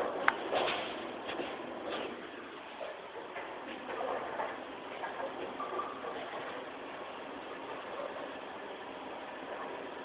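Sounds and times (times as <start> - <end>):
bowling alley hum and murmur: 0.0 - 10.0.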